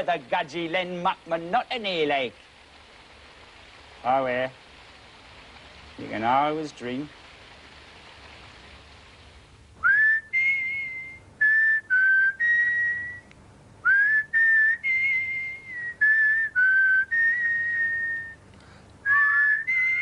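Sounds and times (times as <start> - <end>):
soft hiss: 0.0 - 20.0
whistled tune: 9.8 - 18.4, 19.0 - 20.0.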